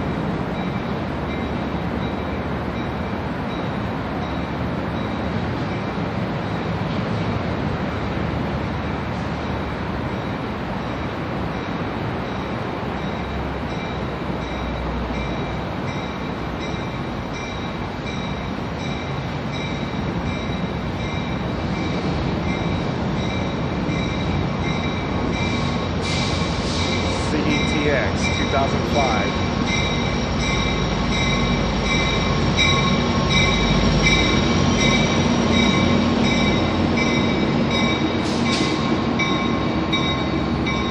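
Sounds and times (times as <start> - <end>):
train rumbling on rails: 0.0 - 40.9
high wheel squeal: 23.2 - 28.6.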